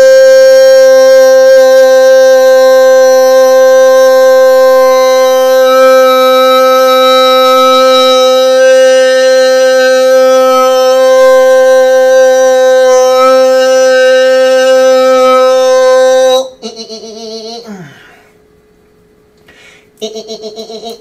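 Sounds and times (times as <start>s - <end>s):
man holding long vocal note: 0.0s - 18.2s.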